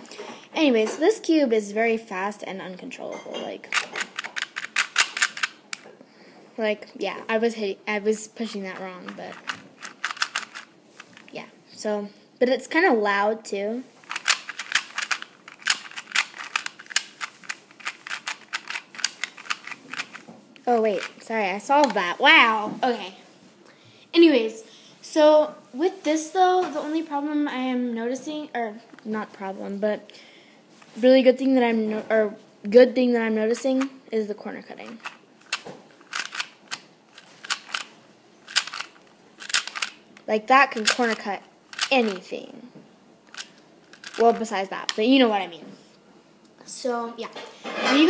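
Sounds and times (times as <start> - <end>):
plastic puzzle cube clicking: 3.7 - 5.8, 9.3 - 11.2, 14.1 - 20.2, 34.9 - 40.0, 40.8 - 42.2, 43.3 - 44.3.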